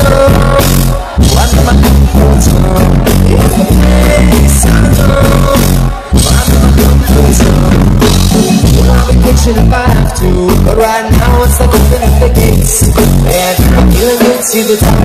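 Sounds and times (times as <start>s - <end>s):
reggae rock band playing live: 0.0s - 15.0s.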